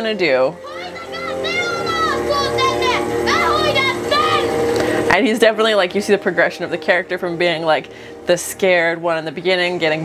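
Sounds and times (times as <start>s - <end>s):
film music with sustained notes: 0.0s - 10.0s
high voices calling out: 0.6s - 5.1s.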